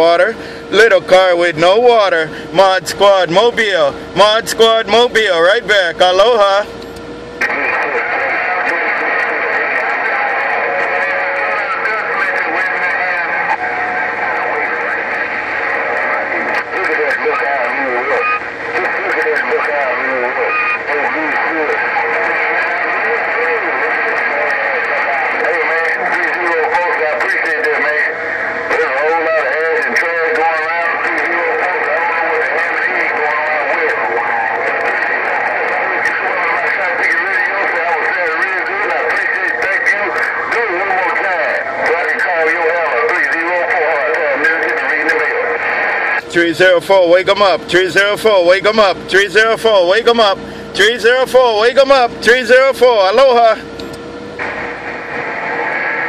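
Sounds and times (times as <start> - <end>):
radio static: 0.0 - 56.0
voices over radio speaker: 0.0 - 56.0.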